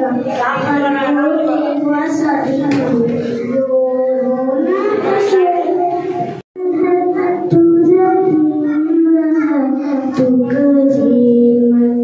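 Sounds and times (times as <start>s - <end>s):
girl singing into microphone: 0.0s - 12.0s.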